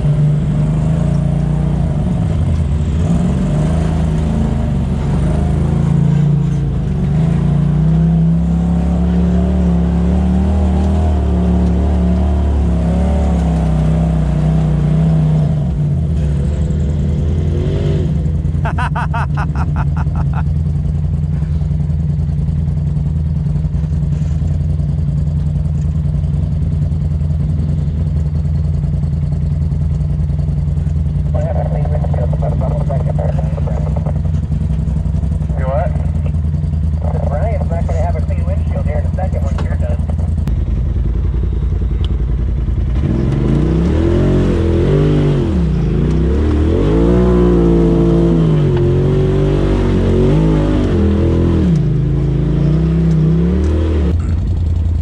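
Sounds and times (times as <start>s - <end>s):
off-road vehicle engine running: 0.0s - 55.0s.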